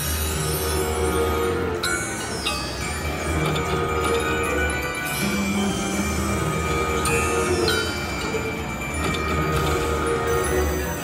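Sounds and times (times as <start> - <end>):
slot machine bonus music: 0.0 - 11.0
slot machine chimes: 0.0 - 11.0.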